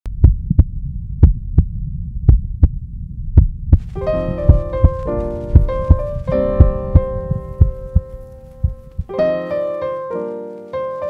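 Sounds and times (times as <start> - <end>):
steady low hum: 0.1 - 9.1
heartbeat double thumps: 0.1 - 9.2.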